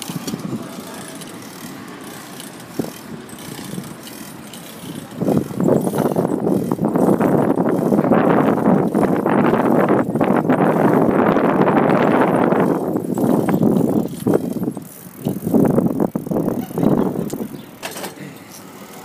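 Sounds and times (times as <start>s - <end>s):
bicycle riding rushing noise: 0.0s - 19.0s.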